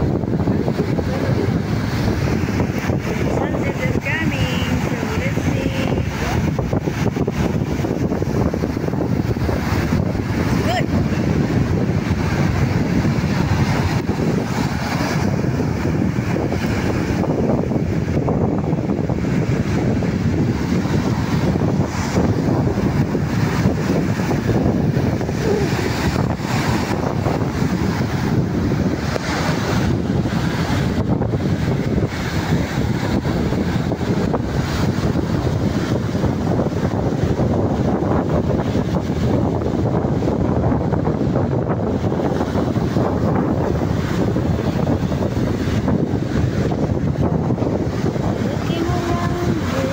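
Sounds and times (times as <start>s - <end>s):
surf breaking on beach: 0.0s - 49.9s
wind buffeting microphone: 0.0s - 49.9s.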